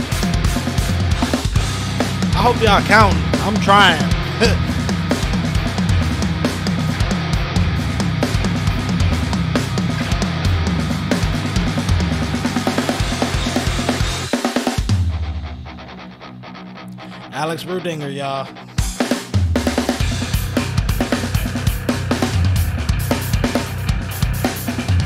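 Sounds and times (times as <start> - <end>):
fast metal drumming: 0.0 - 14.8
heavy backing track: 0.0 - 25.0.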